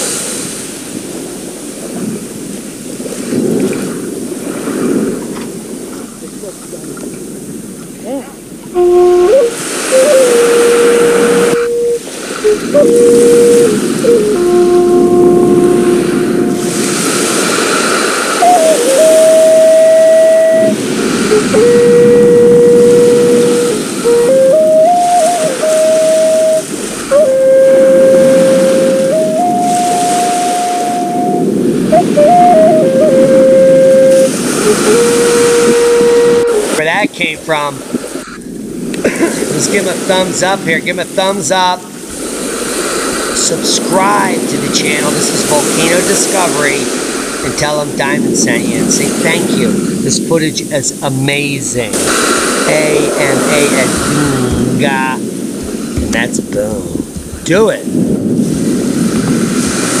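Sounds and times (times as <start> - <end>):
slow melody of held notes: 8.7 - 17.1, 18.4 - 36.7
steady rushing backing: 52.6 - 58.0.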